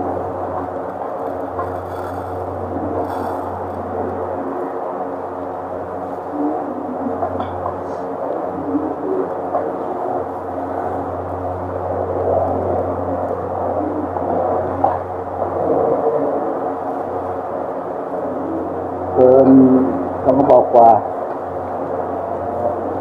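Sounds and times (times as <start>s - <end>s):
constant low hum: 0.0s - 23.0s
droning murmur of voices: 0.0s - 23.0s.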